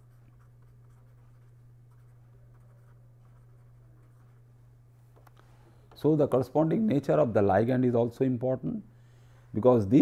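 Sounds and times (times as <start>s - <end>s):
pen scratching on paper: 0.0s - 4.4s.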